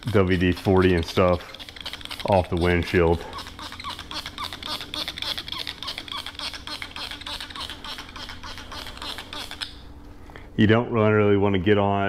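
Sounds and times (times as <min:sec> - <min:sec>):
spray trigger squeaking: 0:00.0 - 0:09.8.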